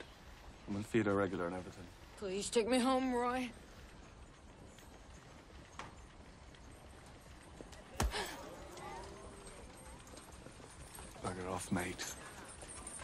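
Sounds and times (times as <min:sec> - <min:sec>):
distant voices: 0:00.0 - 0:13.0
horse hooves clopping: 0:00.0 - 0:13.0.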